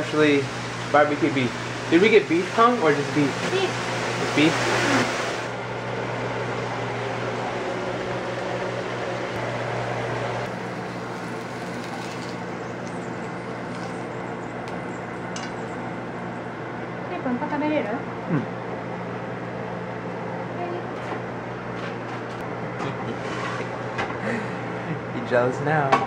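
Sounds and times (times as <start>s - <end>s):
beef frying in a pan: 10.4s - 14.0s.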